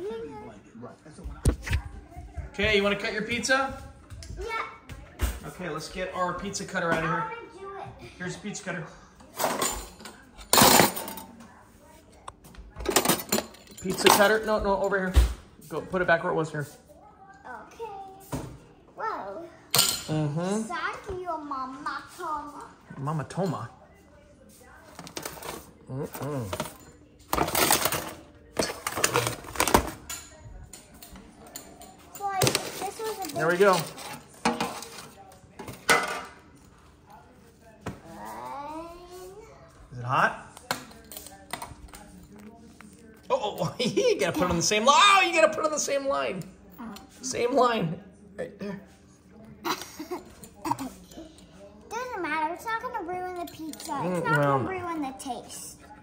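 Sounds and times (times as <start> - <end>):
metal utensils rattling in drawer: 26.5 - 30.2.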